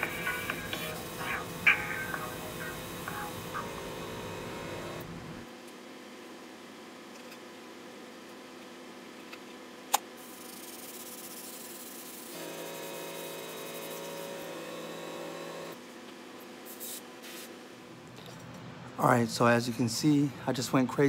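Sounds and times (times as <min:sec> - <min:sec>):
spray paint hissing: 0:16.7 - 0:17.5
short bursts of spray: 0:16.7 - 0:17.6.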